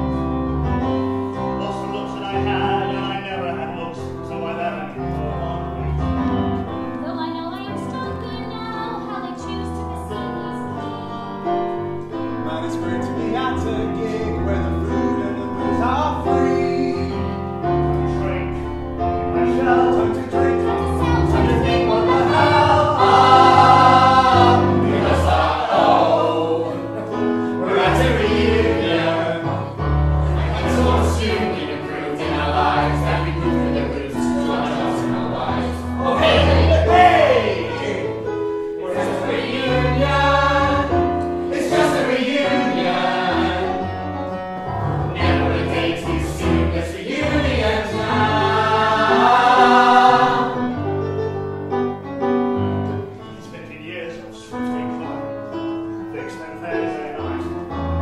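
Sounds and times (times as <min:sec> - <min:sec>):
mixed choir singing in harmony: 0:00.0 - 0:07.3, 0:09.0 - 0:51.7.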